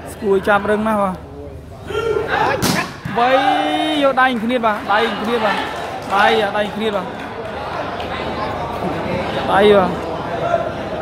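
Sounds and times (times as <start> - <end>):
volleyball smack: 2.6 - 3.2.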